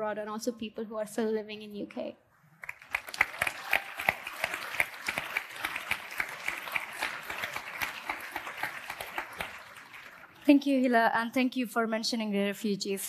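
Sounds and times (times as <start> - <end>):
audience applauding: 2.6 - 10.4.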